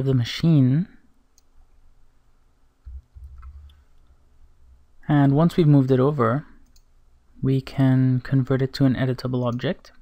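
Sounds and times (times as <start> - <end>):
computer mouse clicks: 6.6 - 6.9.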